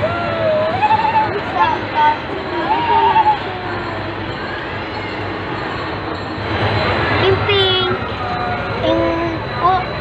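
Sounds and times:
person's high wavering voice: 0.0 - 4.3
steady background hum: 0.0 - 10.0.

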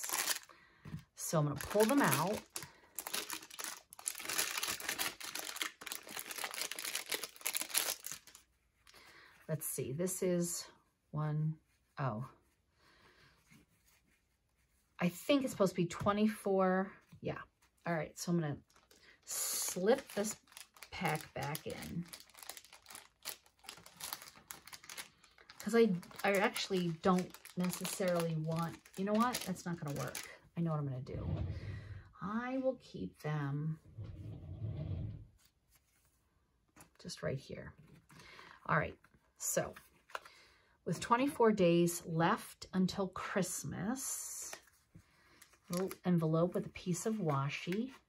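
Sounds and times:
paper envelopes rustling: 0.0 - 0.5, 1.5 - 8.4, 18.7 - 30.3, 44.6 - 46.0.

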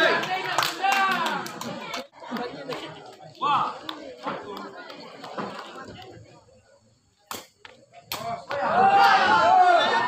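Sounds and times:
crowd clapping: 0.0 - 5.8
people talking and calling out: 0.0 - 10.0.

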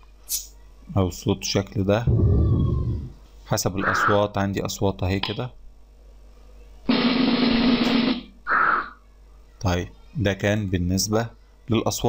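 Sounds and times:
drum roll sound effect: 2.1 - 3.2.

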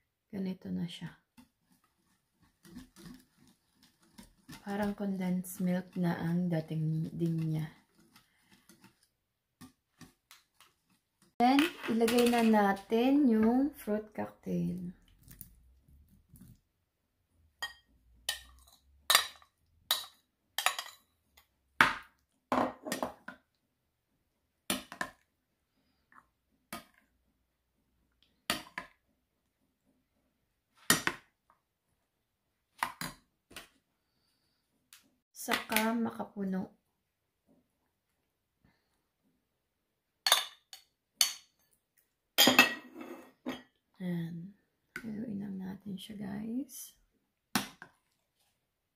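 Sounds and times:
spoon scraping bowl: 1.4 - 9.1, 10.6 - 12.9, 42.5 - 43.5
spoon clinking on ceramic bowls: 17.6 - 21.1, 40.3 - 41.6, 42.4 - 43.6.

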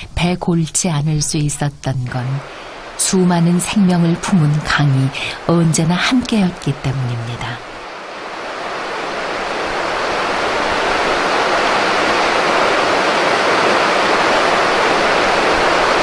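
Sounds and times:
river water rushing: 2.4 - 16.0.

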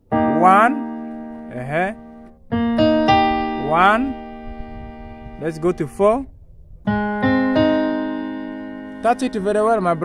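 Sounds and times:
piano chord on keyboard: 0.0 - 10.0.

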